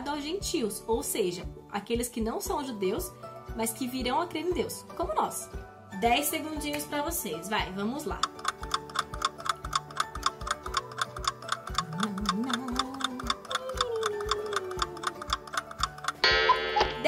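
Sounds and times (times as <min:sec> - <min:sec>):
faint background music: 0:00.0 - 0:17.0
clock ticking rapidly: 0:07.9 - 0:17.0.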